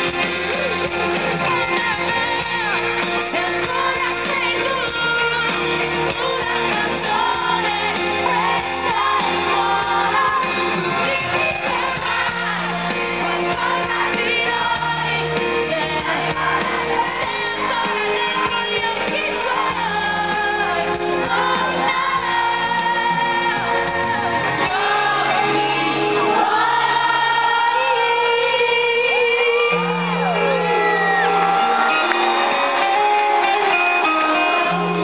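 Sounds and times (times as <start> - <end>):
live band playing pop: 0.0 - 35.0
woman singing into a microphone: 1.3 - 30.7.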